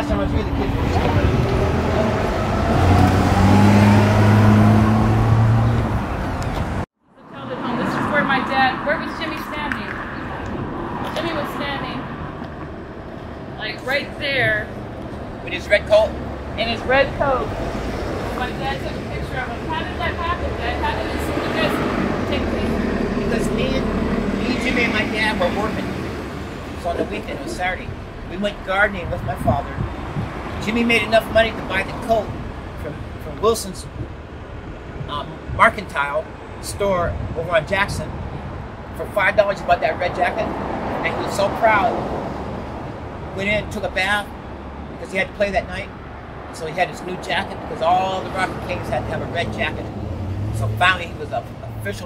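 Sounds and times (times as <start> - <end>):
man talking: 0.0 - 1.7, 13.6 - 14.8, 15.4 - 17.6, 18.3 - 26.1, 26.7 - 29.9, 30.5 - 34.0, 35.0 - 38.2, 38.9 - 42.0, 43.3 - 44.4, 45.0 - 52.0.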